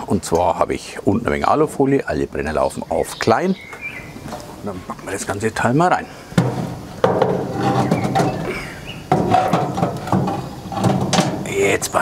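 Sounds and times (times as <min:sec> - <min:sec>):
paper scraping over metal grill bars: 0:06.3 - 0:11.6
sharp knocks on grill rack: 0:06.4 - 0:11.5.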